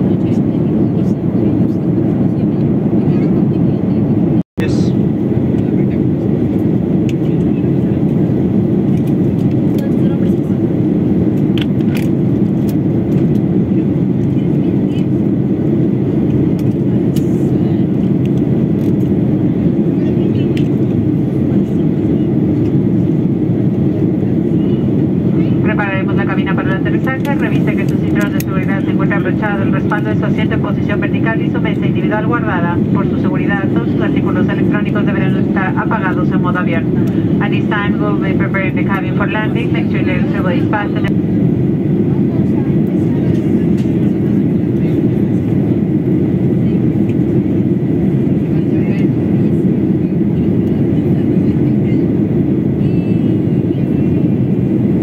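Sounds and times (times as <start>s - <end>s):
airliner engines and airflow roar: 0.0s - 55.0s
announcement over cabin speakers: 0.0s - 55.0s.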